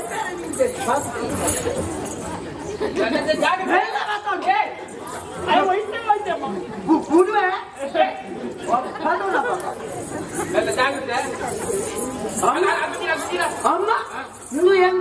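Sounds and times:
several voices talking: 0:00.0 - 0:15.0.

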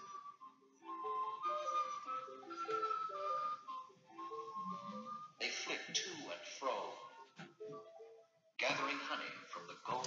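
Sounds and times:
gentle instrumental music: 0:00.0 - 0:10.0.

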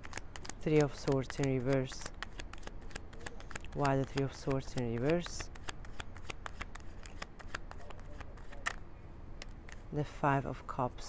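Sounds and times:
cards being shuffled: 0:00.0 - 0:08.8, 0:09.4 - 0:10.1.

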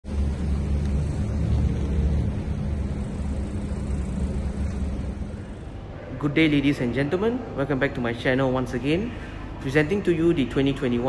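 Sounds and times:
vehicle engine rumble: 0:00.0 - 0:06.3.

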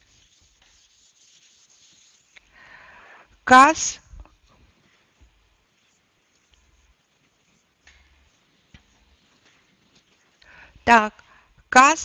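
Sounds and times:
eraser rubbing on whiteboard: 0:00.0 - 0:02.5, 0:04.3 - 0:10.4.

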